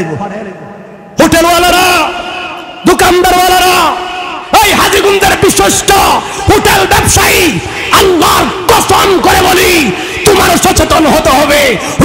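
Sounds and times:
man shouting through loudspeaker: 1.2 - 12.0.

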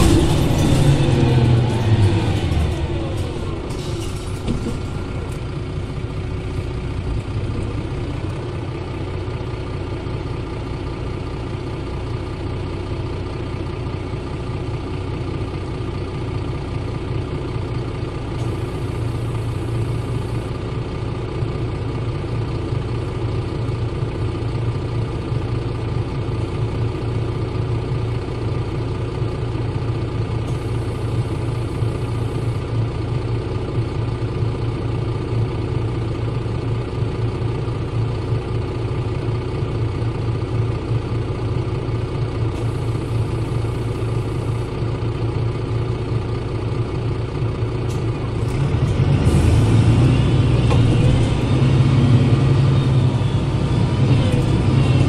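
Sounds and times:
bus diesel engine idling: 0.0 - 55.0.

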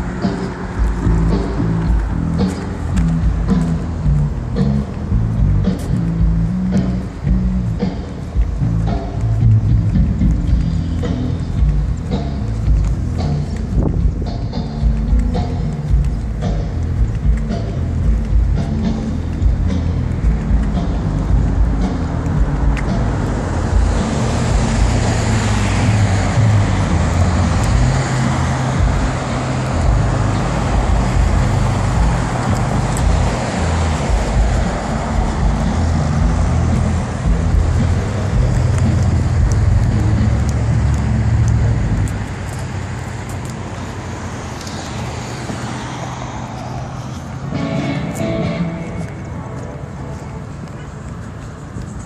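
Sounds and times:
heavy low rumble: 0.0 - 51.9
cars passing: 0.0 - 52.0.

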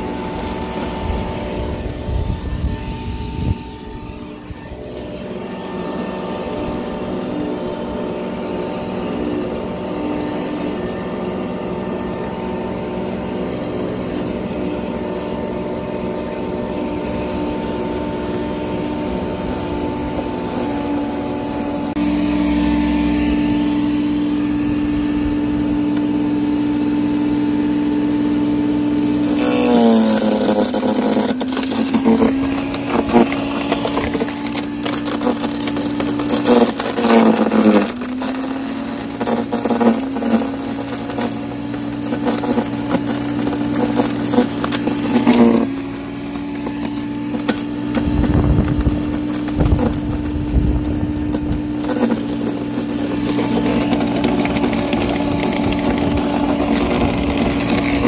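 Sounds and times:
chipper shredder motor whine: 0.0 - 58.0
blades cracking and snapping wood: 28.9 - 58.0.

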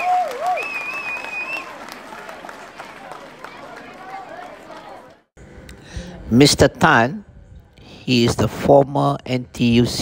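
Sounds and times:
hubbub of stadium crowd: 0.0 - 7.6.

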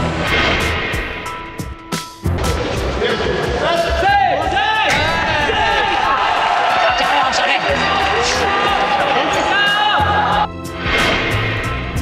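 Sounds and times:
upbeat background music: 0.0 - 12.0
people cheering and shouting: 3.2 - 10.5.

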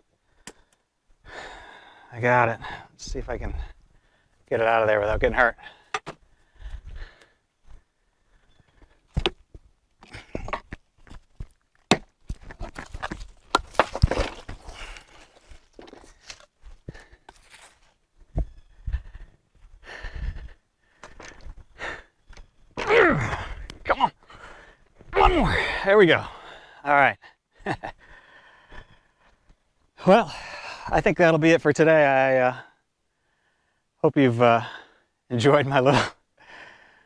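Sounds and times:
man breathing hard: 0.2 - 4.4, 5.6 - 9.1, 16.6 - 17.5, 18.6 - 22.4, 23.2 - 24.9, 25.5 - 29.5, 32.6 - 34.0, 36.2 - 37.0
man grunting with effort: 22.8 - 24.2.

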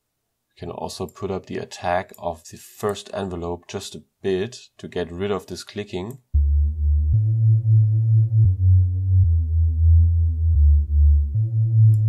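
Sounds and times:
synth sub bass notes: 6.3 - 12.0.

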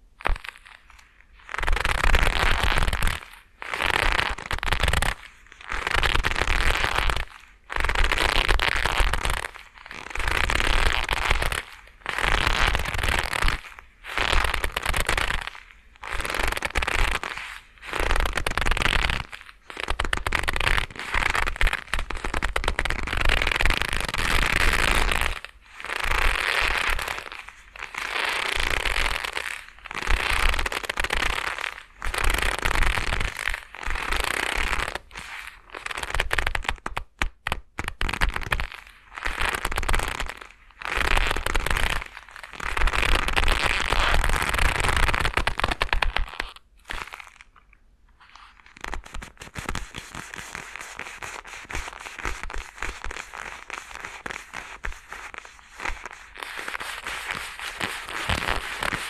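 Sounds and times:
leather gloves creaking: 0.2 - 47.6, 48.2 - 59.0.

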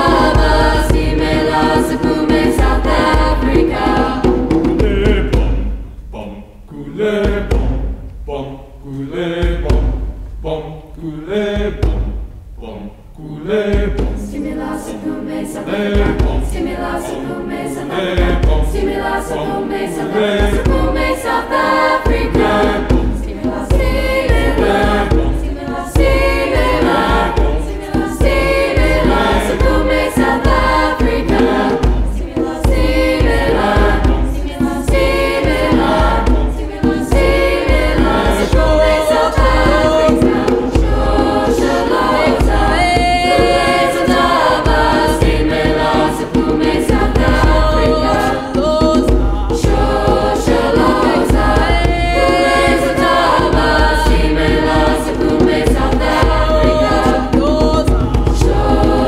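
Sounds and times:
hand drum beat: 0.0 - 6.0, 7.2 - 8.1, 9.4 - 10.5, 11.5 - 12.5, 13.6 - 59.0
choir singing: 0.0 - 59.0.

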